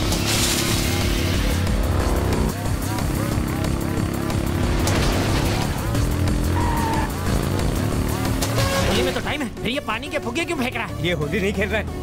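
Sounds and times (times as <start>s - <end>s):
motorcycle engine running: 0.1s - 8.6s.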